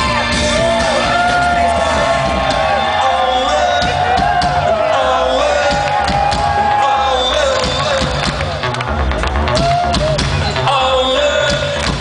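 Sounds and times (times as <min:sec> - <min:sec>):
man singing long notes: 0:02.9 - 0:08.3, 0:10.5 - 0:12.0.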